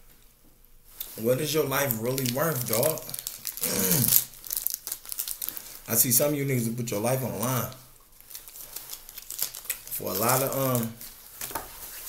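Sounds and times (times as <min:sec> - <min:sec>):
plastic wrapper crinkling and tearing: 0:00.9 - 0:06.2, 0:07.2 - 0:12.0.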